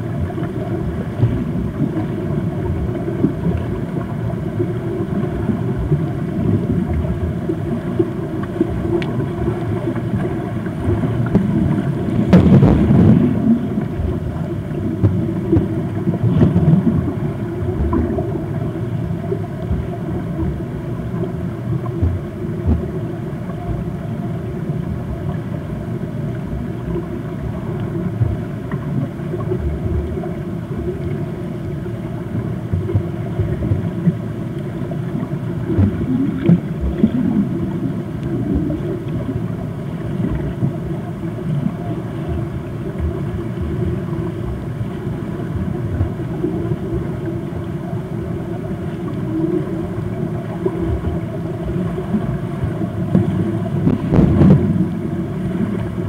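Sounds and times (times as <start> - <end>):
muffled underwater rumble: 0.0 - 56.0.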